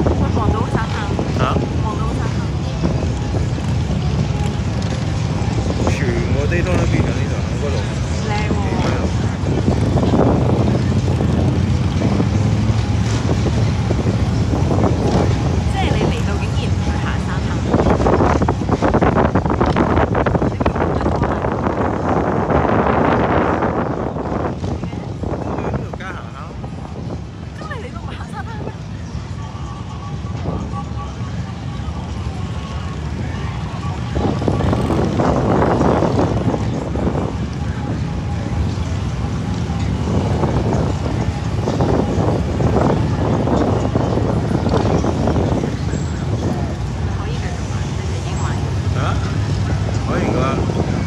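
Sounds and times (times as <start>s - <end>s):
faint voices: 0.0s - 51.0s
wind buffeting microphone: 0.0s - 51.0s.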